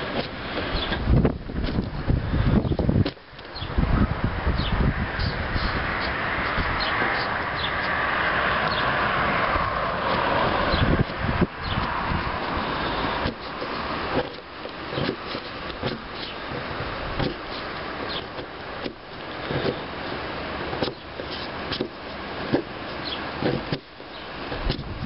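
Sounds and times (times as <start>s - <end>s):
steady rushing noise: 0.0s - 25.0s.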